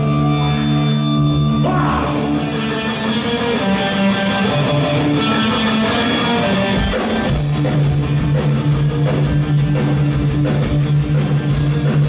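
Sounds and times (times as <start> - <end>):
bass guitar: 0.0 - 12.0
drums with cymbal beat: 0.0 - 12.0
electric guitars: 0.0 - 12.0.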